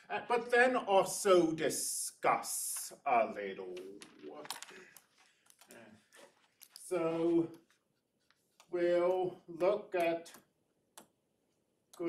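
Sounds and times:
faint sharp clicks and taps: 3.8s - 11.2s.

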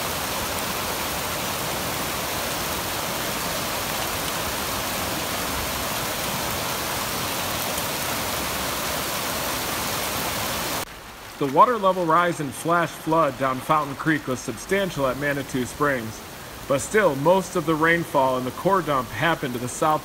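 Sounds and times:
turbulent water rushing: 0.0s - 20.0s.

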